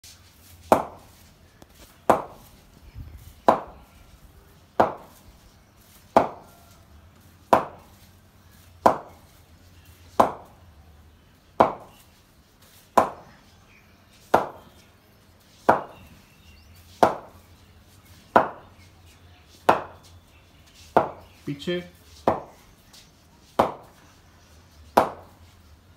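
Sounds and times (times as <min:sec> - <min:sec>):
cricket bat striking ball: 0:00.6 - 0:01.1, 0:02.1 - 0:02.5, 0:03.4 - 0:03.8, 0:04.8 - 0:05.2, 0:06.1 - 0:06.6, 0:07.4 - 0:08.0, 0:08.8 - 0:09.3, 0:10.1 - 0:10.6, 0:11.6 - 0:12.0, 0:13.0 - 0:13.3, 0:14.3 - 0:14.8, 0:15.7 - 0:16.1, 0:17.0 - 0:17.4, 0:18.3 - 0:18.7, 0:19.6 - 0:20.1, 0:20.9 - 0:21.4, 0:22.2 - 0:22.6, 0:23.6 - 0:24.0, 0:25.0 - 0:25.4.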